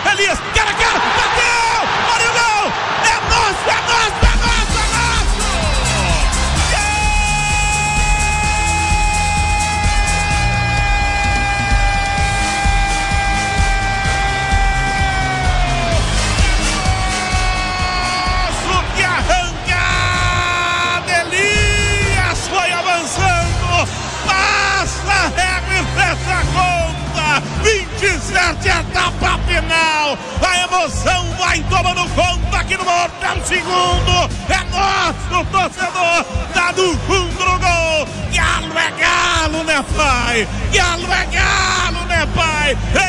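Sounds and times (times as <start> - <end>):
radio narrator long shout: 0.0 - 16.0, 16.7 - 43.0.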